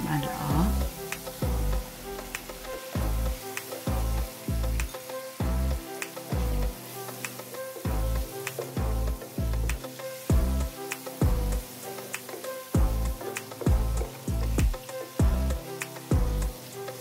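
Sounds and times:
music with deep bass beat: 0.0 - 16.8
meat sizzling in hot oil: 0.0 - 17.0.

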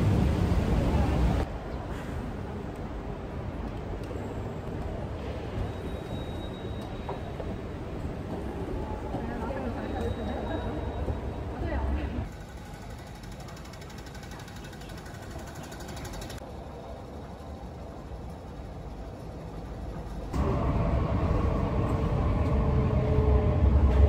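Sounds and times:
metro station background noise: 0.0 - 24.0
train rumbling from inside carriage: 0.0 - 24.0.

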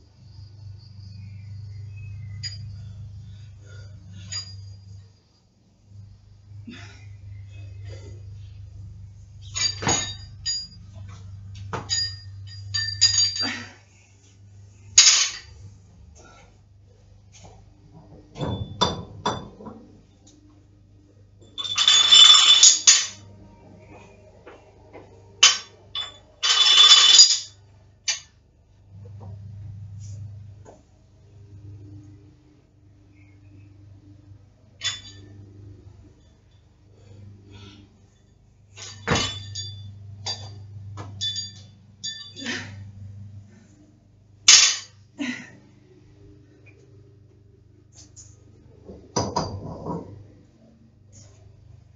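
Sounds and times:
metal clinks: 2.2 - 5.0, 9.4 - 13.8, 21.4 - 23.2, 25.4 - 28.4, 34.8 - 35.4, 36.2 - 43.7
barbell plates jangling: 3.6 - 5.0, 9.4 - 13.8, 21.4 - 23.2, 25.4 - 28.3, 34.8 - 35.4, 36.3 - 42.9.

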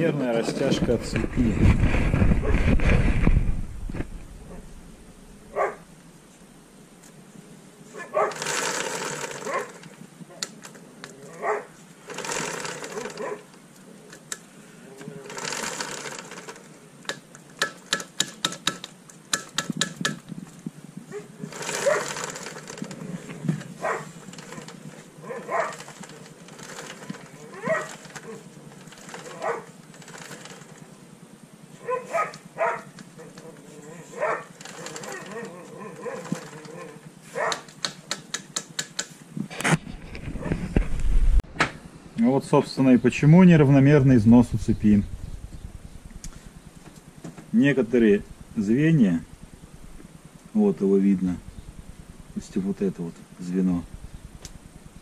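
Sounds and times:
chain running over sprockets: 8.2 - 13.5, 15.1 - 20.1, 21.4 - 30.9, 33.4 - 37.6
rapid ticking: 8.3 - 9.9, 12.0 - 13.4, 15.3 - 20.3, 21.5 - 23.0, 23.8 - 30.9
sharp clicks and knocks: 15.6 - 20.6, 37.5 - 41.8.

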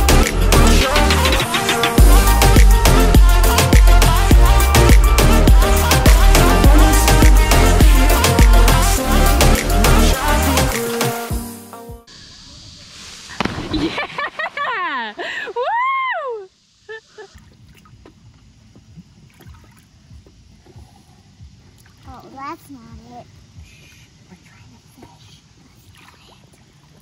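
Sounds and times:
background music: 0.0 - 12.1
water sloshing in shallows: 17.3 - 20.6, 25.7 - 27.0.

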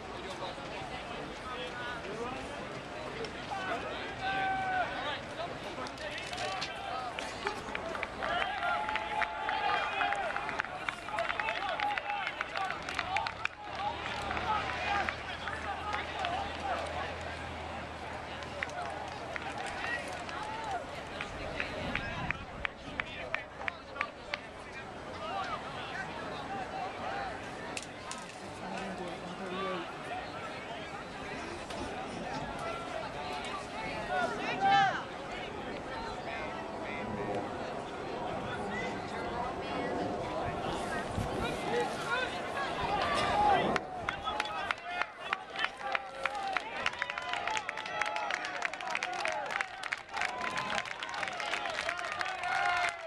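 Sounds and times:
crowd talking and calling out: 0.0 - 53.0.

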